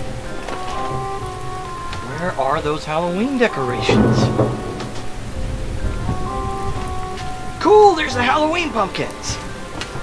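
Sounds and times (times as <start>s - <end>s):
rain: 0.0s - 10.0s
sustained music notes: 0.0s - 10.0s
low thunder rumble: 3.7s - 7.6s.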